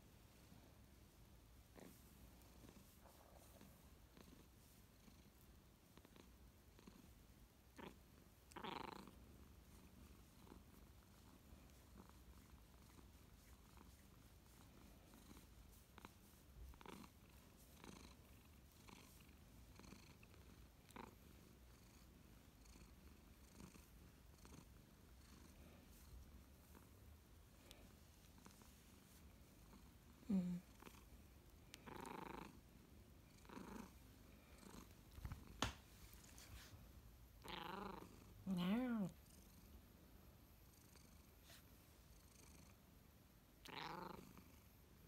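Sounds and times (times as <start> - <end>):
cat purring: 0.0 - 45.0.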